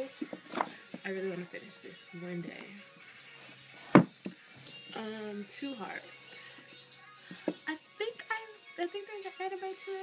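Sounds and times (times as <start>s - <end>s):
hard thump: 3.9s - 4.2s.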